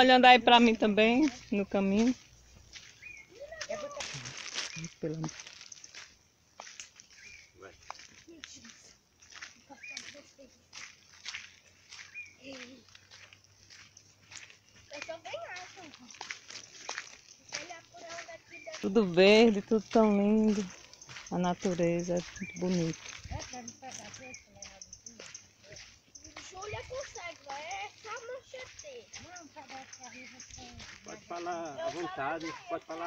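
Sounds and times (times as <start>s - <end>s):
footsteps crunching on dirt trail: 0.0s - 33.0s.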